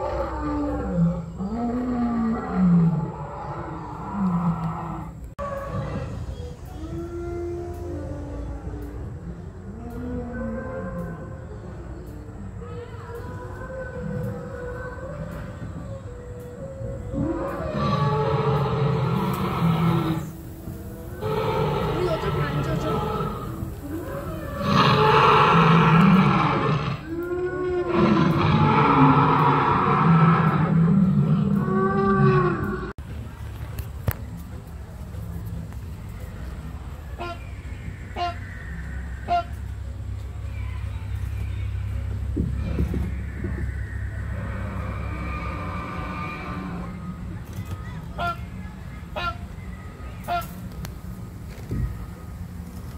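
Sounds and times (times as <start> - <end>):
dinosaur roars and growls: 0.0 - 11.7, 13.3 - 20.4, 21.0 - 32.9, 41.8 - 47.4.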